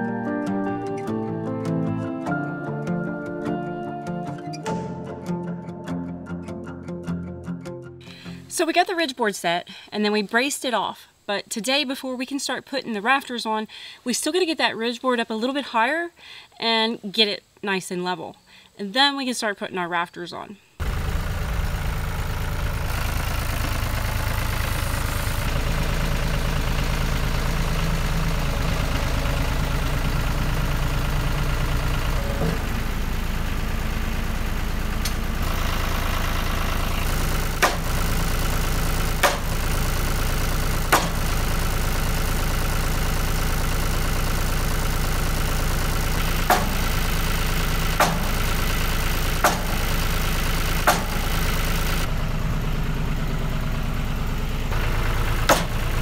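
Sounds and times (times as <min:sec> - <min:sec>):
tractor engine idling: 0:20.8 - 0:56.0
sledgehammer blows on wood: 0:40.9 - 0:41.2.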